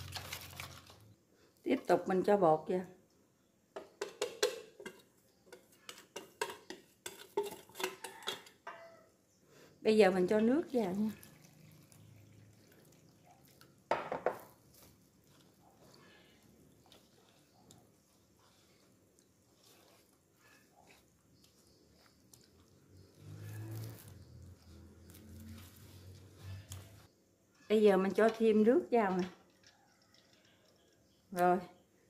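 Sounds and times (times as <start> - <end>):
water pouring into metal bowl: 0.0 - 1.1, 10.4 - 13.9
batter mixed by hand: 0.0 - 1.2, 3.8 - 8.4, 9.8 - 27.1.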